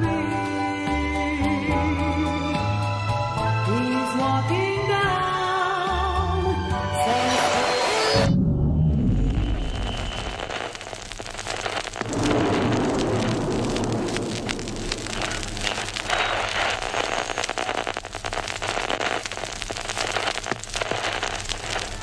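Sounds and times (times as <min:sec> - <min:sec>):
deep rumble: 0:08.2 - 0:22.0
crackling hiss with pops: 0:09.1 - 0:22.0.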